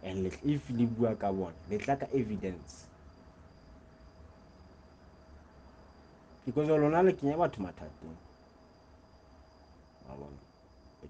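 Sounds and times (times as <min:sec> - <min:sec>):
person speaking: 0:00.0 - 0:02.8
faint high-pitched whine: 0:00.0 - 0:11.0.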